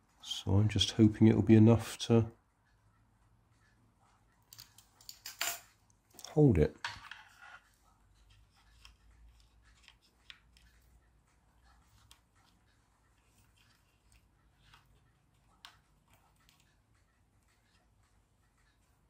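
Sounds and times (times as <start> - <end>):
soft plastic clicks and rubs: 2.6 - 19.0.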